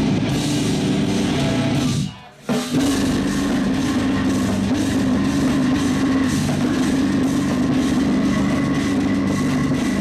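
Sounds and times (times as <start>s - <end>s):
bass low notes: 0.0s - 2.1s, 2.8s - 10.0s
distorted guitars: 0.0s - 10.0s
drum kit: 0.0s - 10.0s.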